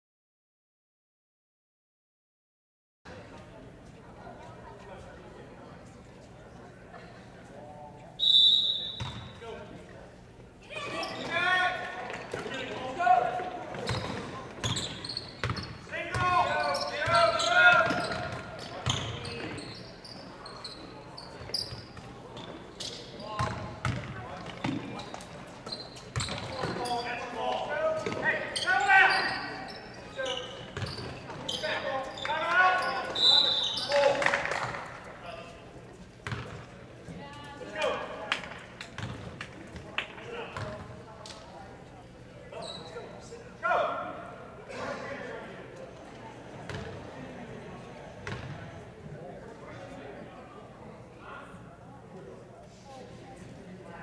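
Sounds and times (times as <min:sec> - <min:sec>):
referee's whistle: 0:08.2 - 0:09.2, 0:32.8 - 0:34.0.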